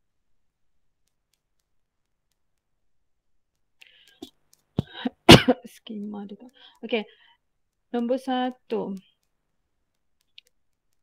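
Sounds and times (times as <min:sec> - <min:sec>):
faint clicks: 0:01.0 - 0:02.7, 0:03.5 - 0:11.0.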